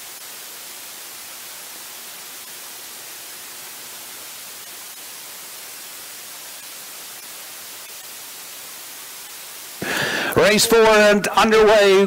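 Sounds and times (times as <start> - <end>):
steady hiss: 0.0 - 12.0
man speaking: 10.3 - 12.0.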